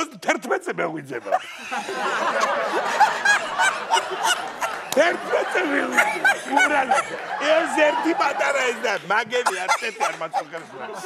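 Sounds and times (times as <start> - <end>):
man laughing: 1.2 - 11.0.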